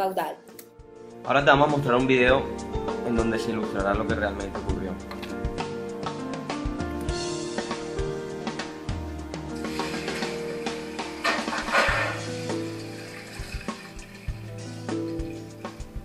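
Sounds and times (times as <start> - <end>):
background music: 0.0 - 16.0
water splashing into containers: 9.6 - 16.0.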